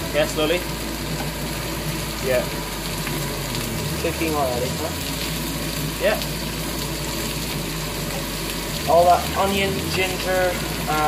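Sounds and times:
prawns sizzling in hot oil: 0.0 - 11.0.

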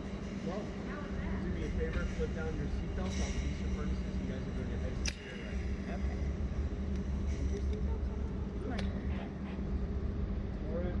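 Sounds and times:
steady low hum: 0.0 - 11.0
sharp click: 5.0 - 5.3.

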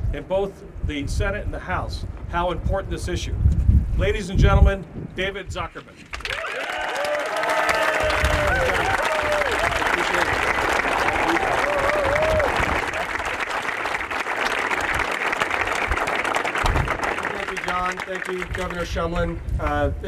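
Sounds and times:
crowd applauding: 6.1 - 19.0
people cheering: 6.2 - 18.8.

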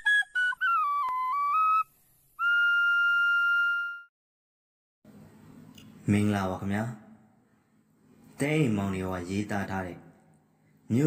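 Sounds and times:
whistle jingle: 0.0 - 4.1.

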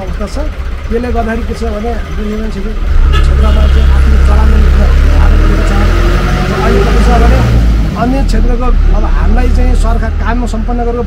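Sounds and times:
man speaking: 0.0 - 11.0
vehicle engine rumbling: 0.0 - 11.0.

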